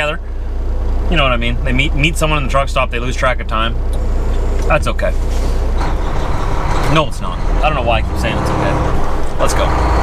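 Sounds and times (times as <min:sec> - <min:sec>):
road and air noise: 0:00.0 - 0:10.0
truck diesel engine running: 0:00.0 - 0:10.0.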